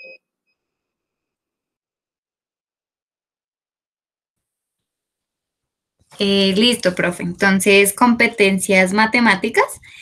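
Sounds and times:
faint electronic beep: 0:00.0 - 0:00.7
faint electronic tone: 0:00.0 - 0:00.7.

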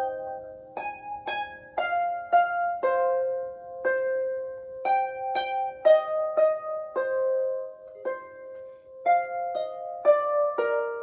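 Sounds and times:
harp plucked notes: 0:00.0 - 0:11.0.

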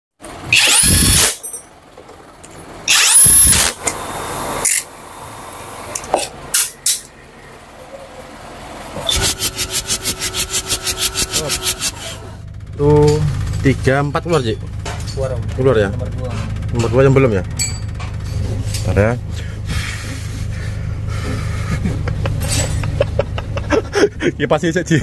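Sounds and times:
impact wrench bursts: 0:00.4 - 0:01.6, 0:02.9 - 0:05.0, 0:09.0 - 0:12.4.

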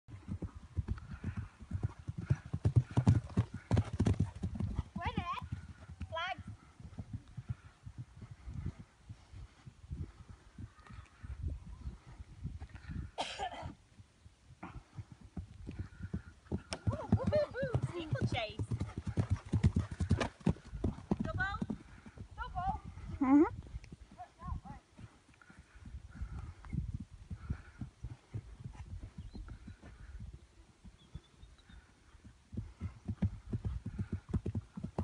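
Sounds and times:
hooves thudding on grass: 0:00.1 - 0:12.9, 0:14.6 - 0:35.0.

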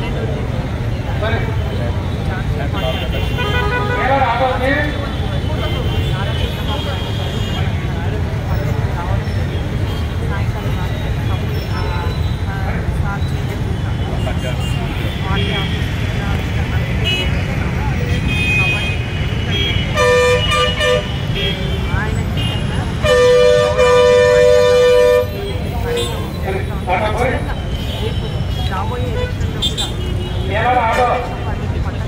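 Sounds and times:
traffic rumble: 0:00.0 - 0:32.0
vehicle horn honking: 0:02.8 - 0:04.5, 0:18.1 - 0:26.2.

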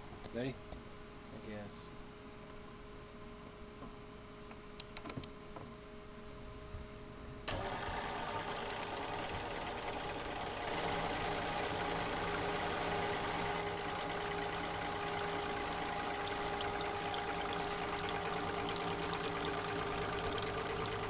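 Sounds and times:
electric motor low hum: 0:07.4 - 0:21.0
pump humming: 0:07.5 - 0:21.0.

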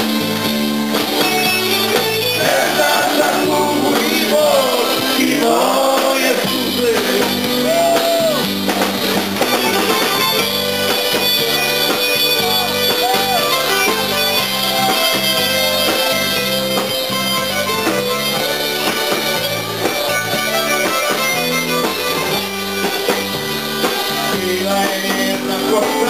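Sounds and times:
repeating bass line: 0:00.0 - 0:24.8
electric guitar: 0:00.0 - 0:26.0
reedy lead melody: 0:00.0 - 0:26.0.

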